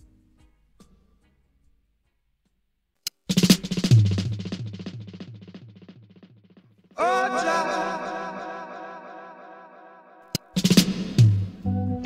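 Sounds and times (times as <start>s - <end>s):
drum-kit fill: 3.3s - 6.8s, 10.4s - 12.0s.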